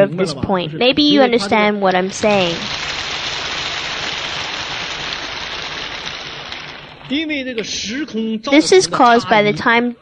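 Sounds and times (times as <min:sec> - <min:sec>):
audience applause: 0:01.9 - 0:07.3.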